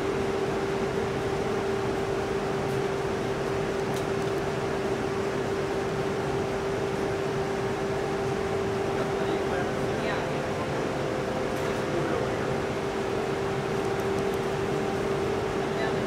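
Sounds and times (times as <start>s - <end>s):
machinery hum: 0.0s - 16.0s.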